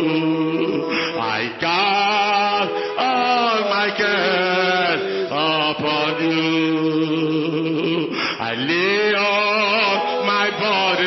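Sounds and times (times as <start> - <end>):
person singing in worship: 0.0 - 11.0.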